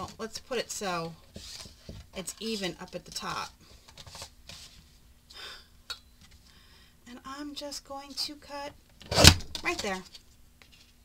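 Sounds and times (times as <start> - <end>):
paper strips sliding and rustling: 1.3 - 2.9, 3.9 - 5.0.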